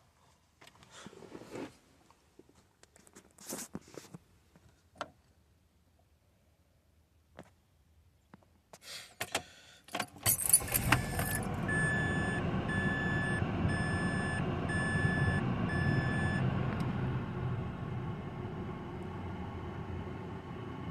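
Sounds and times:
car engine starting and running: 0:10.0 - 0:20.9
keys jangling: 0:10.2 - 0:11.5
car warning chime beeping: 0:10.7 - 0:16.5.

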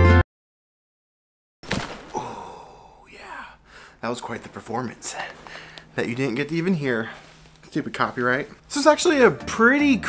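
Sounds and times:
man sighing heavily: 0:02.1 - 0:04.0.

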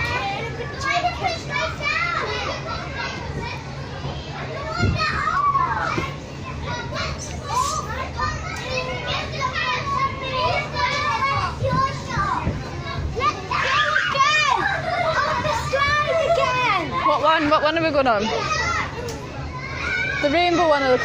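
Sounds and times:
children shouting and calling: 0:00.0 - 0:21.0.

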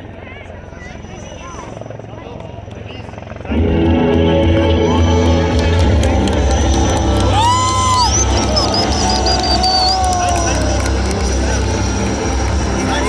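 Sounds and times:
helicopter rotor drone: 0:00.0 - 0:13.0
rising shout or whistle: 0:07.3 - 0:10.6.

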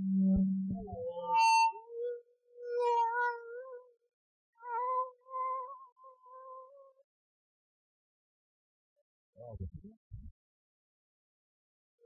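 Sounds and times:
microphone feedback whine: 0:00.0 - 0:01.8.

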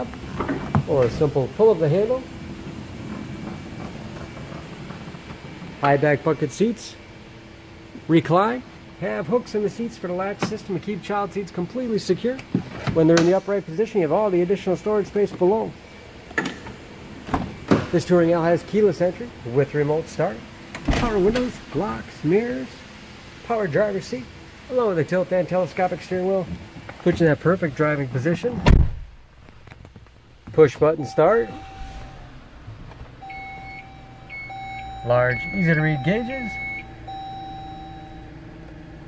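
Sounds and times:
car engine humming: 0:00.0 - 0:11.2, 0:29.2 - 0:39.0
car door thump: 0:28.6 - 0:29.1
dashboard chime with pulsing beep: 0:31.0 - 0:32.3, 0:33.2 - 0:38.3.

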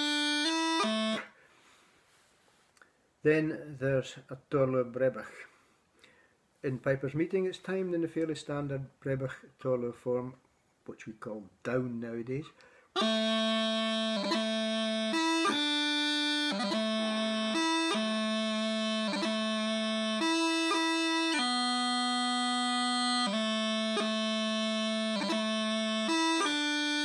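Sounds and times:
bagpipe chanter melody: 0:00.0 - 0:01.4, 0:12.7 - 0:27.0.

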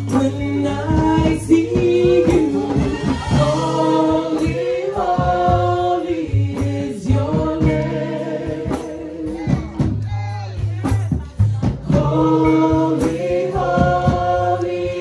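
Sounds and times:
percussion strikes: 0:00.0 - 0:15.0
voices singing together: 0:00.0 - 0:15.0.

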